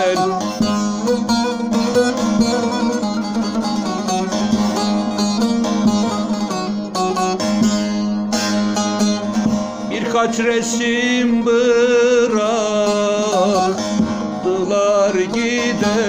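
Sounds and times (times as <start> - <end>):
plucked lute melody over drone: 0.0 - 16.0.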